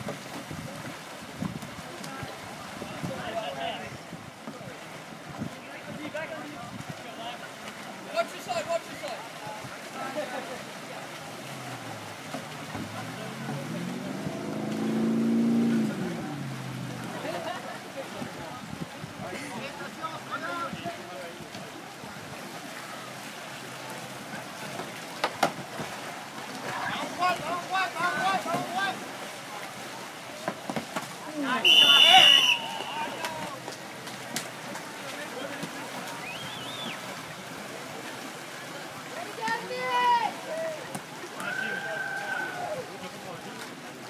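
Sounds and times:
kayak paddles splashing: 0.0s - 44.0s
people shouting: 31.5s - 33.6s, 39.5s - 42.8s
referee's whistle blast: 31.6s - 33.2s.

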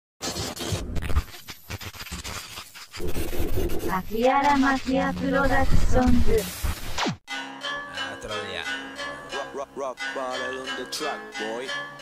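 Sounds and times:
scratchy noisy sound effect: 0.2s - 7.2s.

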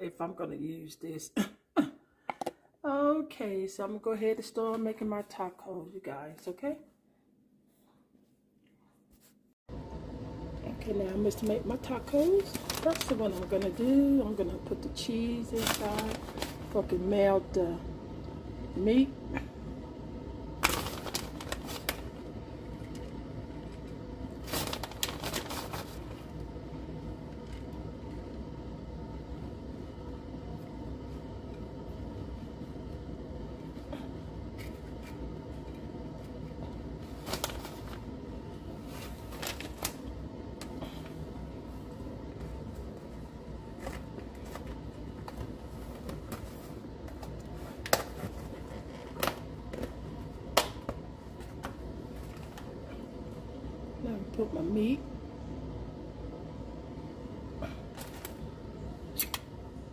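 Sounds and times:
low background hum: 0.0s - 59.9s
plastic bag crinkling: 12.0s - 13.8s, 15.5s - 16.8s, 20.6s - 22.2s, 24.4s - 26.2s, 37.1s - 38.0s, 38.8s - 40.1s.

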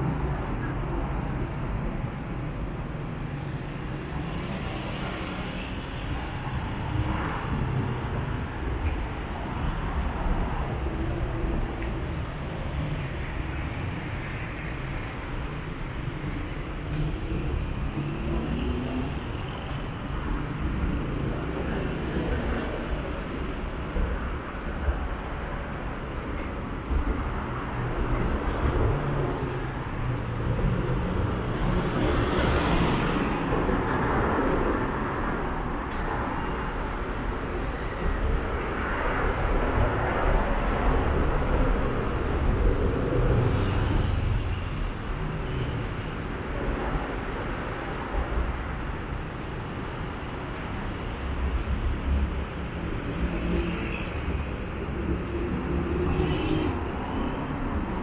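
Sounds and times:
road traffic rumble: 0.0s - 58.0s
vehicles passing: 0.0s - 58.0s.

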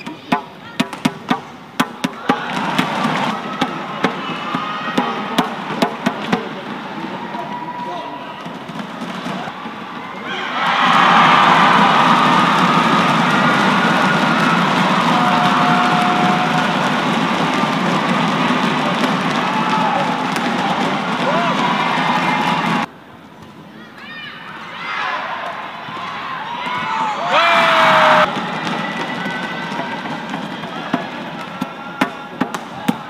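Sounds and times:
crowd cheering and shouting: 2.0s - 22.9s, 24.0s - 33.0s
crowd murmur: 2.2s - 22.9s
rackets striking shuttlecock: 31.4s - 33.0s.

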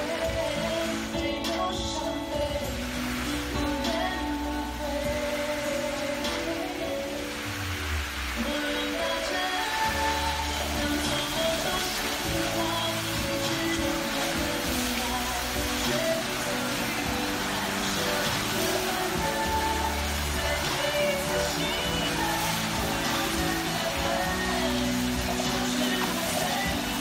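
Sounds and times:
hiss of fountain water: 0.0s - 27.0s
music playing: 0.0s - 27.0s.

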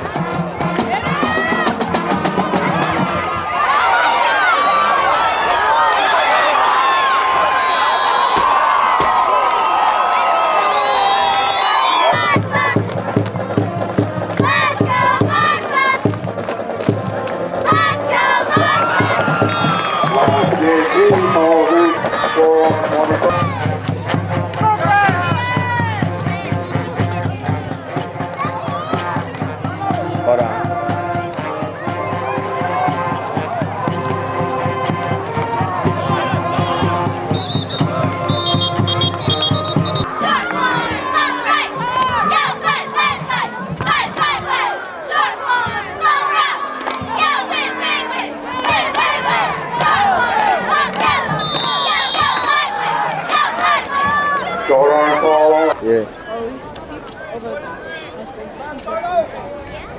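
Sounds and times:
crowd shouting and cheering: 0.0s - 59.9s.

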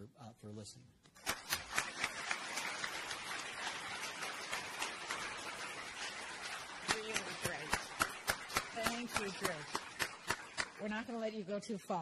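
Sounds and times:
audience applauding: 1.2s - 11.4s.

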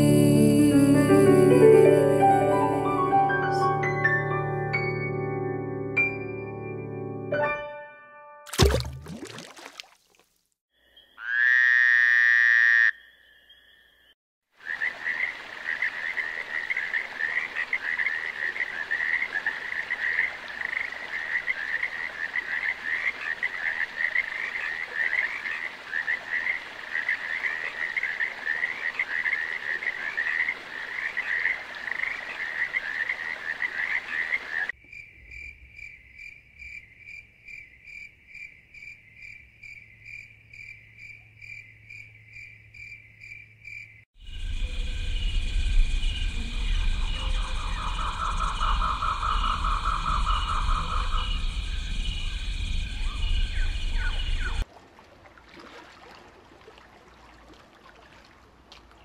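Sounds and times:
frog chorus trilling: 10.8s - 34.7s, 44.2s - 54.6s.

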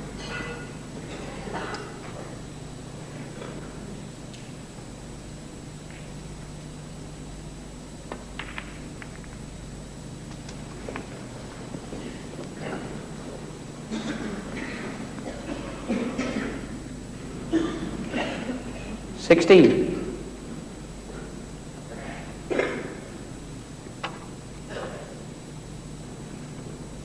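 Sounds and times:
steady low hum: 0.0s - 27.0s
snooker balls clicking: 8.1s - 9.5s.

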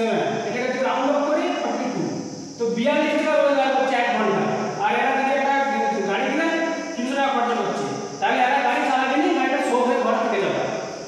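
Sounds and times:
man speaking: 0.0s - 10.8s.

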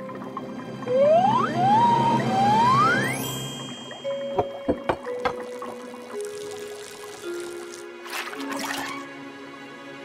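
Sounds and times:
cartoon whistle gliding upward: 0.9s - 3.3s.

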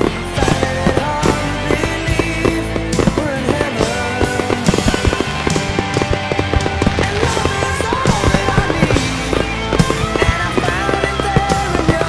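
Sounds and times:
fireworks bangs and crackles: 0.0s - 12.0s
music playing: 0.0s - 12.0s.

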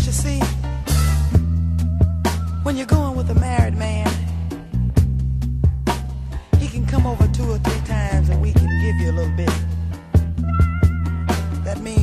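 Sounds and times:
soul band playing: 0.0s - 12.0s.

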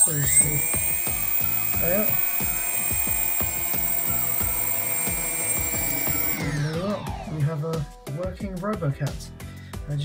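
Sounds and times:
drone motors whining: 0.0s - 7.3s.

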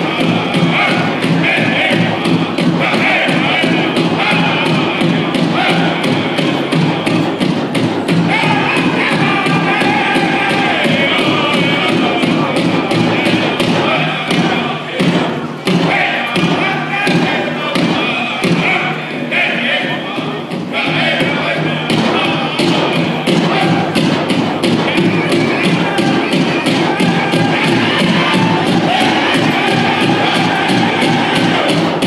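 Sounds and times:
big drum beaten in fast rhythm: 0.0s - 32.0s
singers' high voices: 0.0s - 32.0s.

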